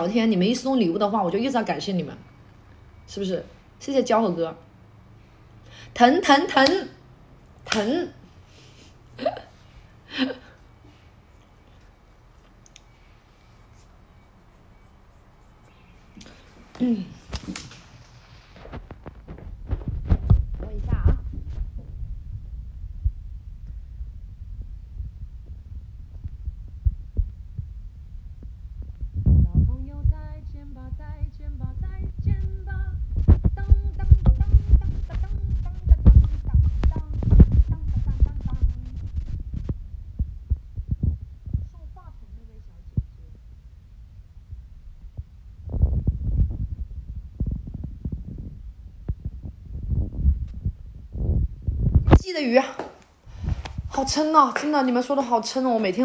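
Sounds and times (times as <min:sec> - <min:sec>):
faint clicks: 0:12.6 - 0:12.9
low rumble: 0:18.6 - 0:52.2.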